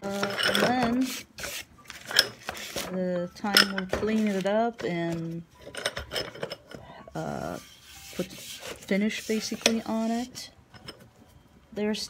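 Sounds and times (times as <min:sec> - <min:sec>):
hand sanding wood: 0:07.4 - 0:10.3.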